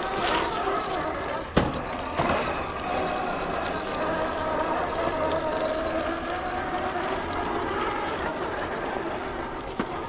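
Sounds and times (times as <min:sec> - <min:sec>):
electric motor whine: 0:00.0 - 0:10.0.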